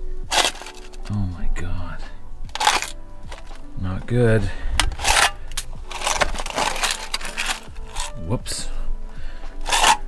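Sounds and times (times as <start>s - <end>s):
background music: 0.0s - 10.0s
crackling crunch of frozen can: 0.2s - 1.2s, 2.5s - 4.2s, 4.8s - 8.3s, 9.4s - 10.0s.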